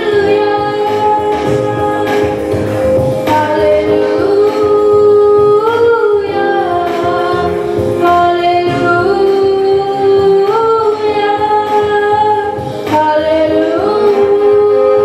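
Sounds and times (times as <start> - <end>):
boy singing into a microphone: 0.0 - 2.6, 3.2 - 15.0
electronic keyboard with steady beat: 0.0 - 15.0.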